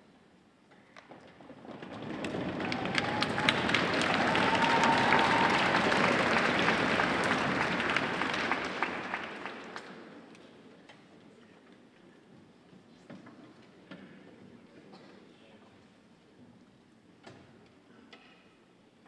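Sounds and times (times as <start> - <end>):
audience applauding: 1.7 - 10.4
rising call from crowd: 2.1 - 9.7.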